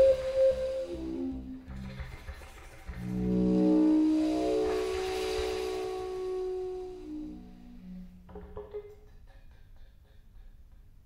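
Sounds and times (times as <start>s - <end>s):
contrabass flute: 0.0s - 8.6s
didgeridoo: 0.0s - 9.3s.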